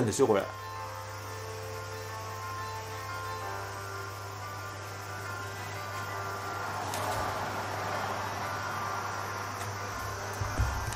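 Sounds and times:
steady electrical hum: 0.0 - 10.9.

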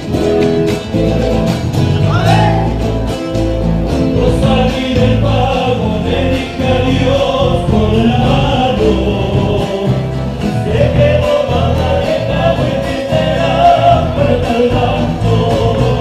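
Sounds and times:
bass rhythm: 0.0 - 16.0
strummed acoustic guitars: 0.0 - 16.0
male voices singing together: 4.0 - 16.0.

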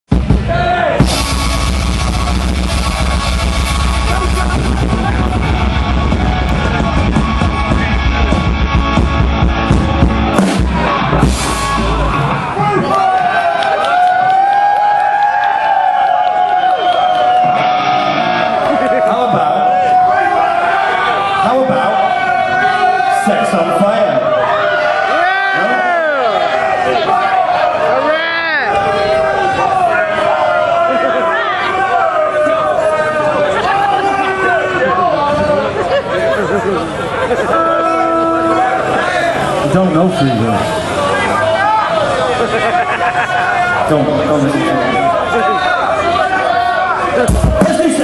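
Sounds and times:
live rock band playing loudly: 0.1 - 12.4, 37.5 - 39.7
crowd voices: 0.1 - 48.0.

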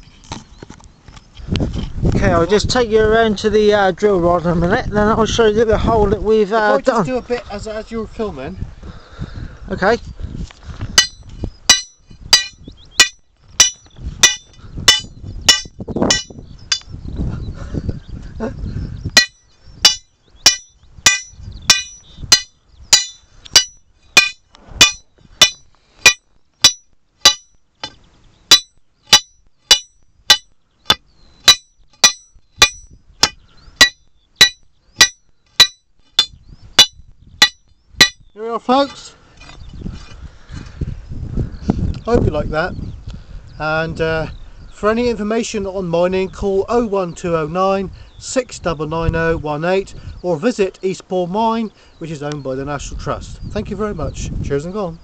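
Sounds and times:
hammer striking steel rod: 11.0 - 16.9, 19.2 - 38.2.

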